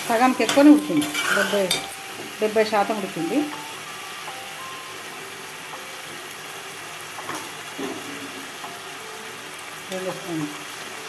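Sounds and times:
pot hissing on stove: 0:00.0 - 0:11.0.

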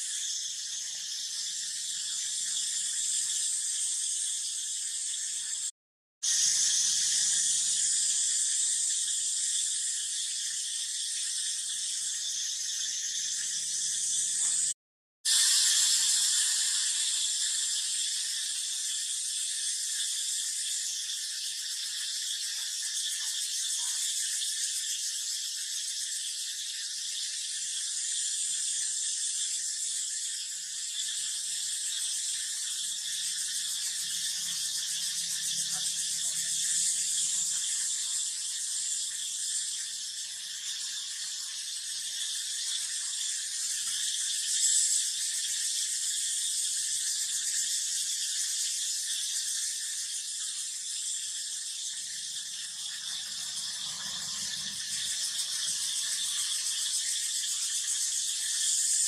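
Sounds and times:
insects buzzing: 0:00.0 - 0:59.0.

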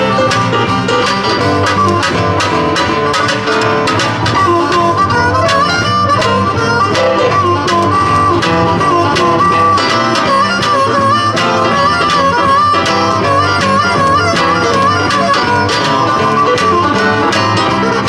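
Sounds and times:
blues band playing: 0:00.0 - 0:18.0
harmonica with bent notes: 0:00.0 - 0:18.0.

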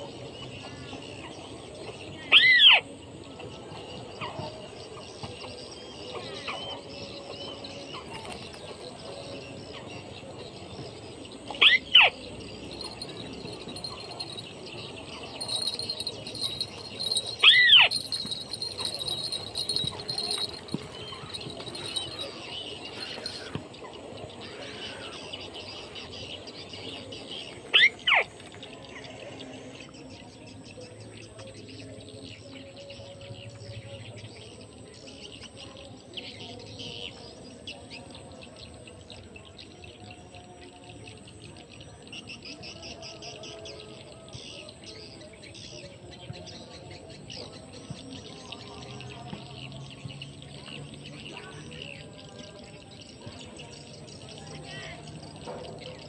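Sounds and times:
distant birds: 0:00.0 - 0:31.3
insects: 0:00.0 - 0:56.0.

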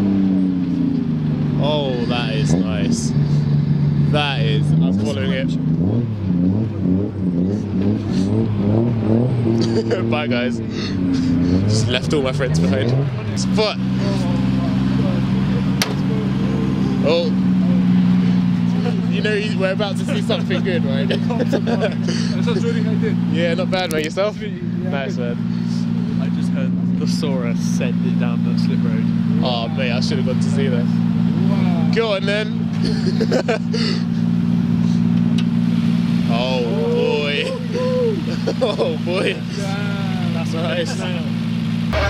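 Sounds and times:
car engine idling: 0:00.0 - 0:42.0
person calling out: 0:36.6 - 0:38.3.

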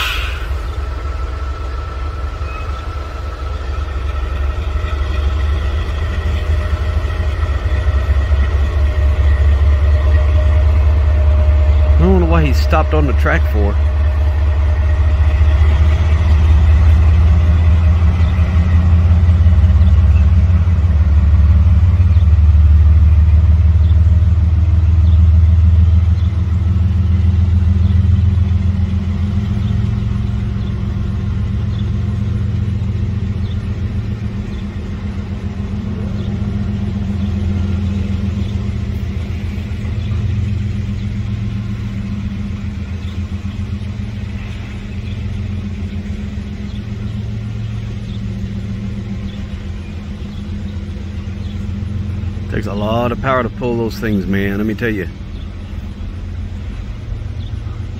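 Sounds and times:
diesel locomotive engine rumbling: 0:00.0 - 0:57.9.

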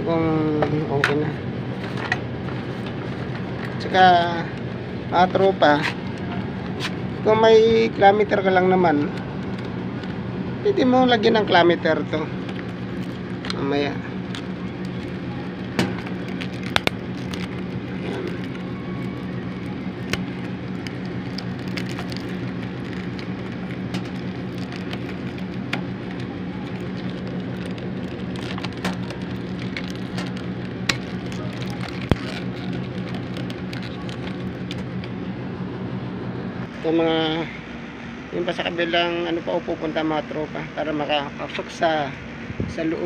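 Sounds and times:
air conditioner unit humming: 0:00.0 - 0:43.0.

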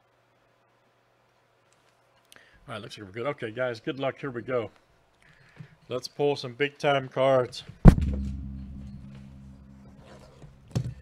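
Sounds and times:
low steady hum: 0:07.8 - 0:11.0.

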